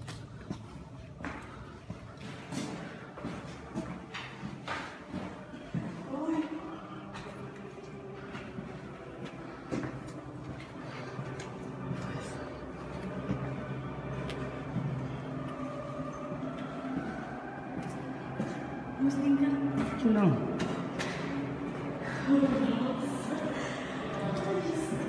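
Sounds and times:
indistinct voices: 1.4s - 25.0s.

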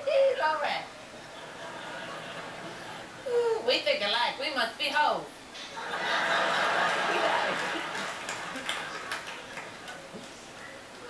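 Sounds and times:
audience laughter: 1.3s - 3.2s, 5.8s - 9.8s.

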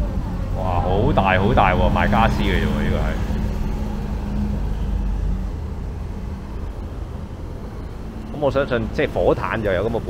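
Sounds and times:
engine hum: 0.0s - 10.0s
road traffic rumble: 0.0s - 10.0s.

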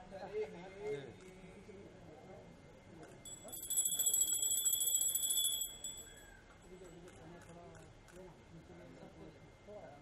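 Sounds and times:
hand bell ringing rapidly: 3.3s - 6.3s.

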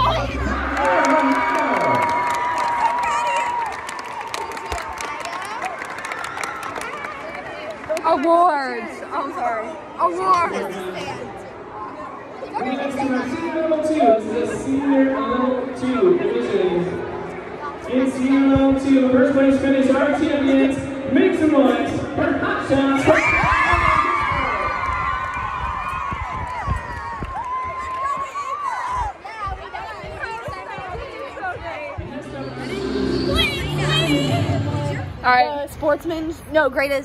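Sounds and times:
girls chattering and exclaiming: 6.6s - 13.4s, 27.6s - 35.3s.

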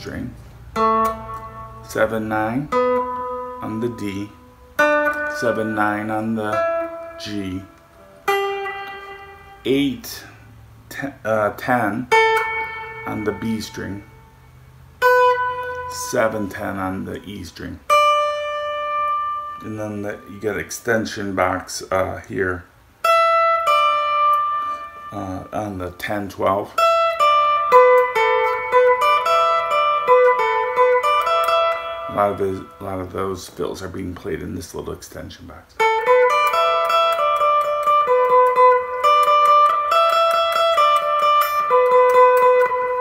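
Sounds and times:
electric guitar notes ringing: 0.0s - 34.3s, 35.8s - 43.0s.

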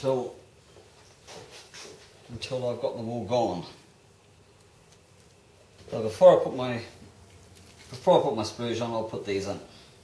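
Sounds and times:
man speaking: 0.0s - 0.4s, 2.3s - 3.8s, 5.9s - 7.0s, 7.9s - 9.7s
faint handling sounds: 0.6s - 2.6s, 4.2s - 8.7s.

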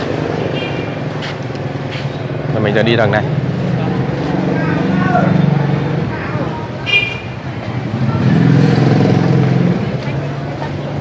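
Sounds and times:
market hubbub with voices: 0.0s - 11.0s.

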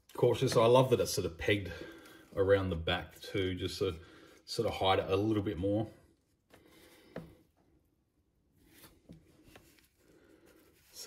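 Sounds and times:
faint plastic taps: 6.5s - 7.7s.

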